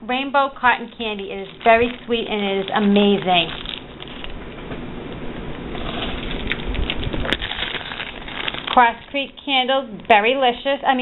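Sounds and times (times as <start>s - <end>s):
cellophane bags crinkling: 0.5s - 4.5s, 5.7s - 9.8s.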